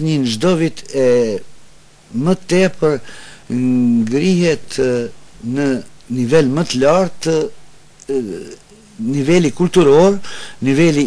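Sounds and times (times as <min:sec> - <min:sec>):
elderly man speaking: 0:00.0 - 0:01.5, 0:02.1 - 0:11.0.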